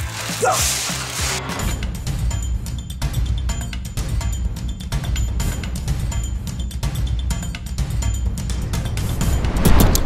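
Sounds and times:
music with steady beat: 0:01.8 - 0:10.0.

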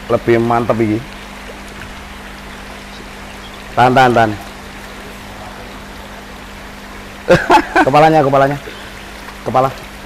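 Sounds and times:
rushing water: 0:00.0 - 0:10.0.

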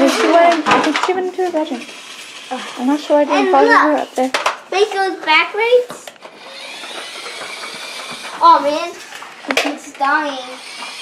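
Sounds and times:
toy electric motor whining: 0:01.5 - 0:04.2, 0:06.2 - 0:11.0.

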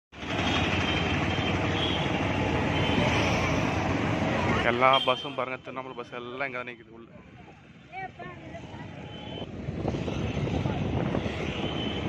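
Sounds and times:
vehicle and road noise: 0:00.1 - 0:12.0
wind rushing over microphone: 0:08.8 - 0:12.0.

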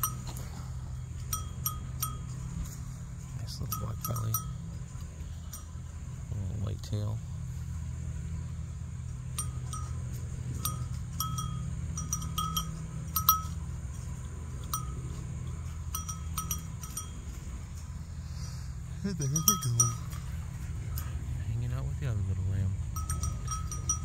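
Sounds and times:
small metal bell clinking: 0:00.0 - 0:02.8, 0:03.5 - 0:05.8, 0:09.2 - 0:18.0, 0:19.2 - 0:21.2, 0:22.9 - 0:24.0
steady low hum: 0:00.0 - 0:24.0.

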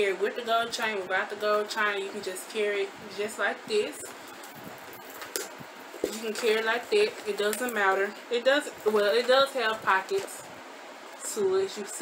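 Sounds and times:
room fan hissing: 0:00.0 - 0:12.0
handling noise: 0:03.9 - 0:10.6.

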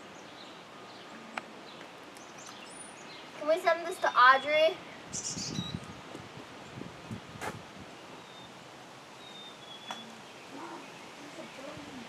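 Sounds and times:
faint high bird chirps: 0:04.0 - 0:06.0, 0:09.2 - 0:12.0.

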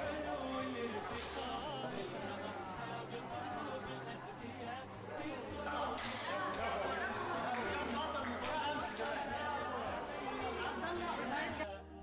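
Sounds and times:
children and adults chattering: 0:00.0 - 0:11.7
faint background music: 0:00.0 - 0:12.0.

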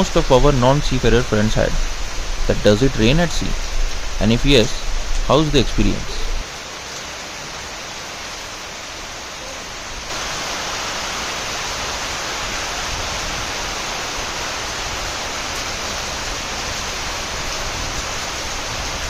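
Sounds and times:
heavy rain hissing: 0:00.0 - 0:19.0.

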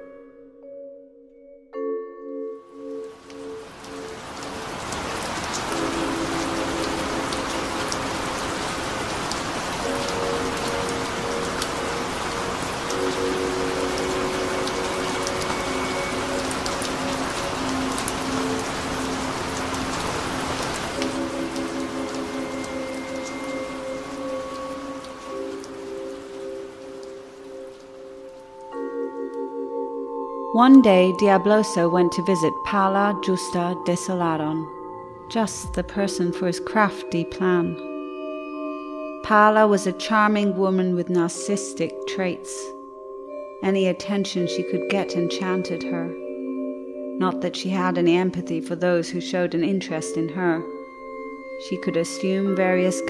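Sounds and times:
heavy rainfall: 0:03.0 - 0:29.1, 0:35.4 - 0:36.9
ambient music of held tones: 0:09.7 - 0:47.4.

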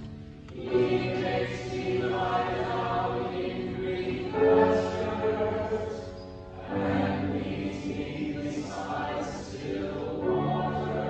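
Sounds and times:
choir singing sustained notes: 0:00.5 - 0:11.0.

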